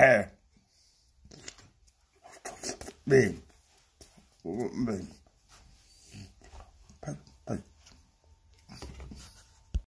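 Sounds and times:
man making wordless sounds: 2.5 - 3.6, 4.3 - 5.2, 7.0 - 7.7.

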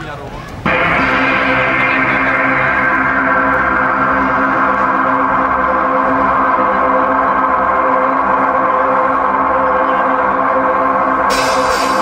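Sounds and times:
synth pad sustained chord: 0.7 - 12.0.

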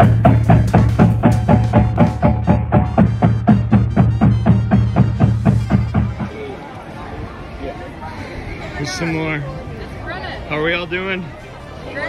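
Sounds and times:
marching drumline playing: 0.0 - 6.4.

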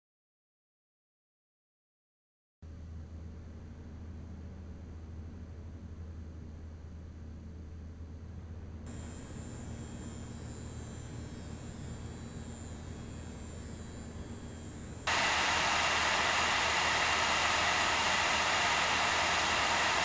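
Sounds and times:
computer hum with high whine: 2.7 - 20.0
loud blower fan rushing: 13.8 - 20.0.

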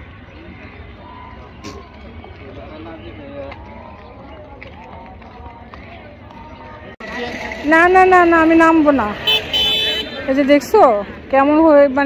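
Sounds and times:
distant people talking: 0.0 - 11.8.

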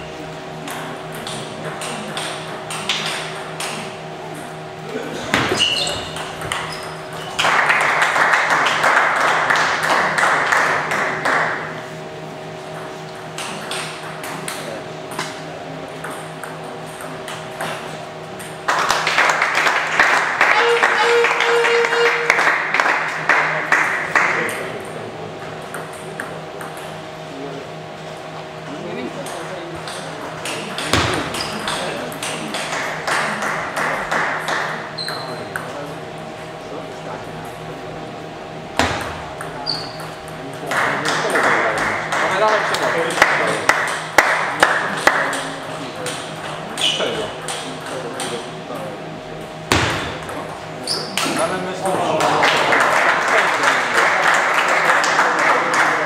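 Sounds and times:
voices in a hall: 0.0 - 56.0.

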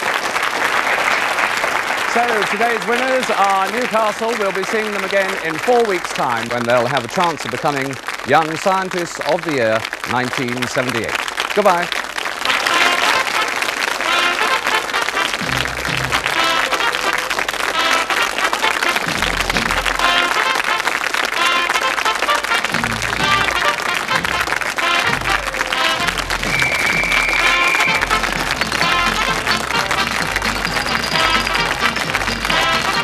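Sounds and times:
audience applauding: 0.0 - 33.0
theme music with bass line: 15.4 - 16.8, 18.9 - 20.3, 22.6 - 33.0.

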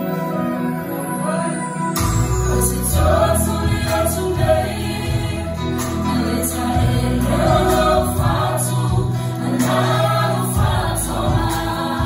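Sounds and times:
amplified accompaniment with bass: 0.3 - 12.0
group singing gospel song: 2.0 - 12.0.

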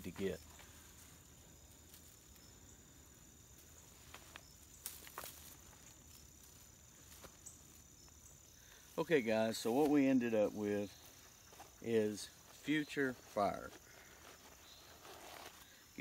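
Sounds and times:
high insect drone: 0.0 - 16.0.

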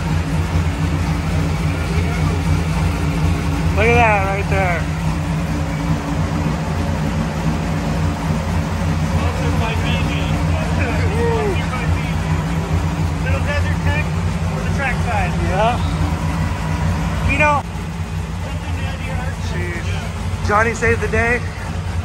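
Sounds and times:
car engine idling: 0.0 - 22.0
voices talking in background: 0.1 - 22.0.

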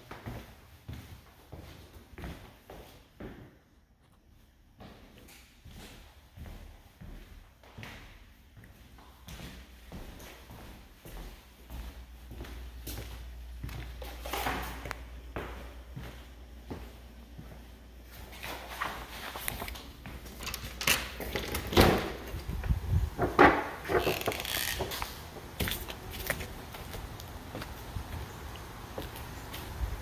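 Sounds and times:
footsteps on hardwood floor: 4.8 - 20.4
door being opened: 19.6 - 25.2.

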